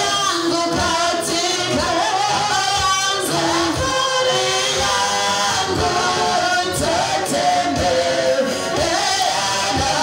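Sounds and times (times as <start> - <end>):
woman singing into microphone: 0.0 - 10.0.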